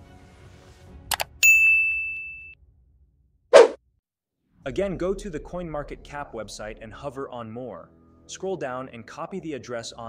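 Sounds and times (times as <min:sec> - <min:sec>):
computer mouse click: 0:01.1 - 0:01.3
bright ding: 0:01.4 - 0:02.6.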